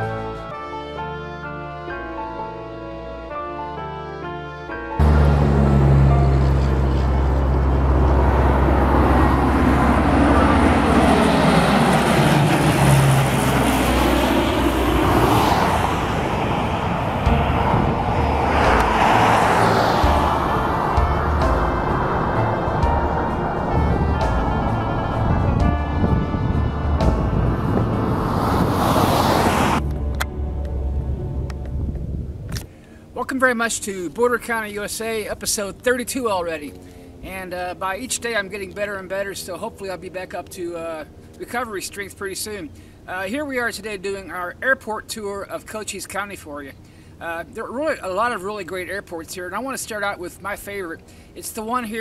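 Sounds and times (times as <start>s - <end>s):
turboprop plane flying overhead: 2.4s - 52.0s.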